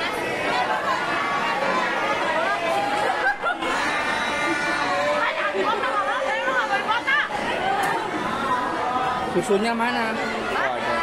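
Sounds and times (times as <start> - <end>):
chatter of students: 0.0 - 11.0.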